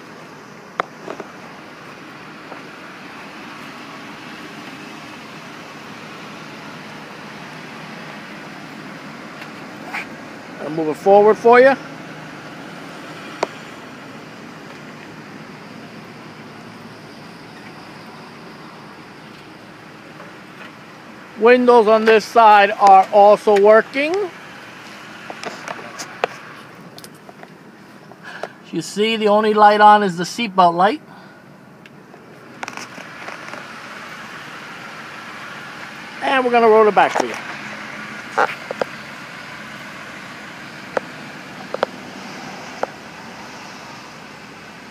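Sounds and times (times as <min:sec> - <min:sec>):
car engine and tyres humming: 0:00.0 - 0:44.9.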